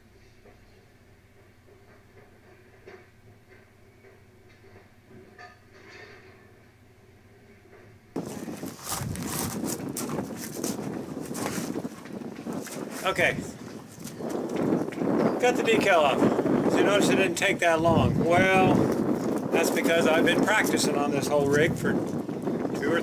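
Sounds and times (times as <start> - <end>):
rough rustling noise: 8.2 - 23.0.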